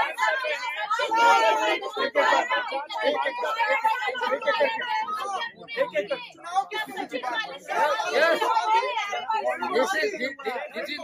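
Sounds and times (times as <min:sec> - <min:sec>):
voices talking over one another: 0:00.0 - 0:11.0.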